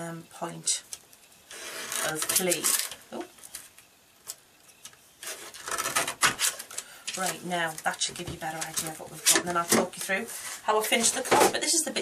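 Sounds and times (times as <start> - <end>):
paper-trimmer blade scraping: 1.5 - 2.8.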